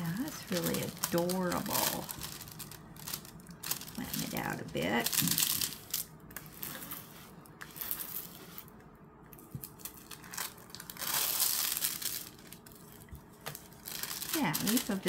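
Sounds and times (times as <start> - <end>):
plastic film crinkling: 0.0 - 7.1, 9.4 - 15.0.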